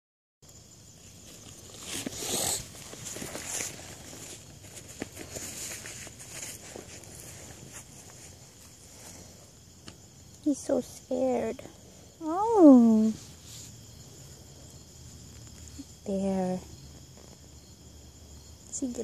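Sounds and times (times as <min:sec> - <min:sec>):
microphone handling rustle: 0:01.0 - 0:09.4.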